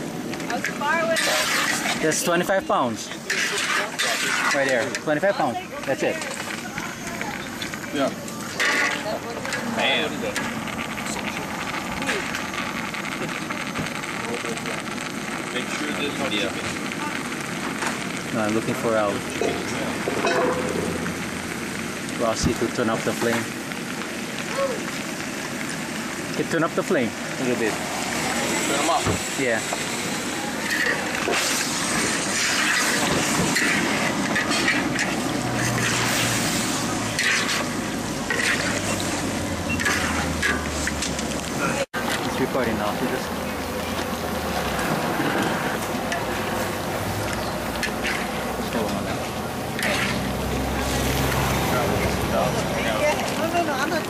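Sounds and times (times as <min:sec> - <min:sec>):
chicken sizzling in a wok: 0:00.0 - 0:54.0
voices chattering: 0:00.3 - 0:54.0
metal spatula scraping a wok: 0:00.5 - 0:02.3, 0:03.1 - 0:05.3, 0:08.4 - 0:10.6, 0:30.6 - 0:41.3, 0:44.8 - 0:51.6.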